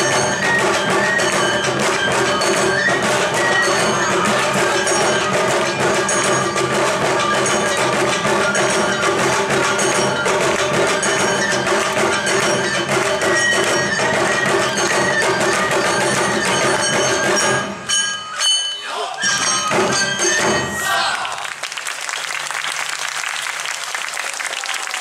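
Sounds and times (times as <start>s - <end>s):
taiko drums dance rhythm: 0.0s - 21.5s.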